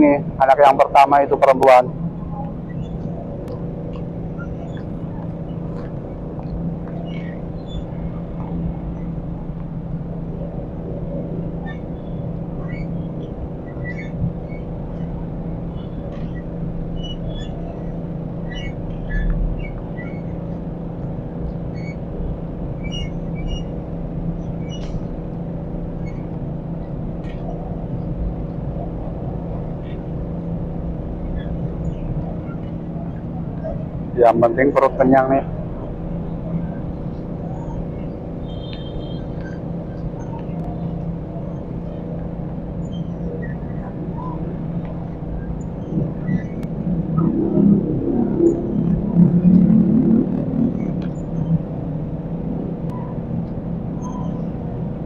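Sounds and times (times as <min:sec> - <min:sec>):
city traffic drone: 0:00.0 - 0:55.0.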